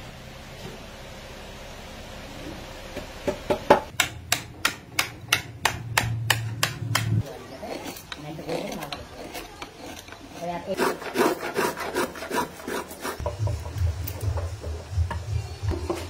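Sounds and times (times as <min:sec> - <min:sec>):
wood being shaved: 0:06.3 - 0:13.6.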